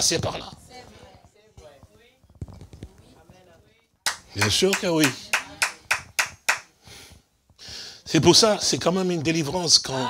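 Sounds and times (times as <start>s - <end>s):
hand claps: 4.1s - 6.7s.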